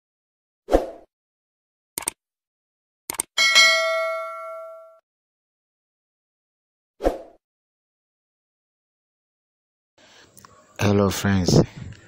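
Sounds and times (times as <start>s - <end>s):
bell ding: 3.4s - 5.0s.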